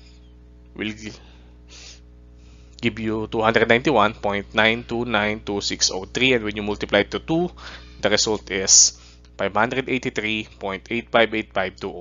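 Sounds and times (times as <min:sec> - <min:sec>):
steady low hum: 0:00.0 - 0:12.0
man breathing in: 0:01.2 - 0:02.8, 0:07.6 - 0:08.0, 0:09.0 - 0:09.3.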